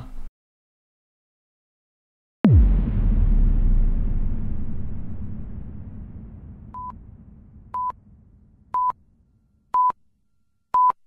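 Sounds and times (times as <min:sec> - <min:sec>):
low rumble: 0:02.5 - 0:10.3.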